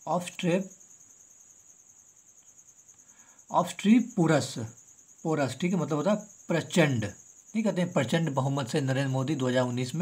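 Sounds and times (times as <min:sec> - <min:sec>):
cricket trilling: 0:00.0 - 0:10.0.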